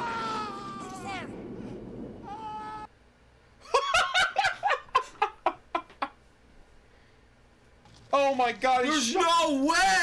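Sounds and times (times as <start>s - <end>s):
man laughing: 3.6s - 6.2s.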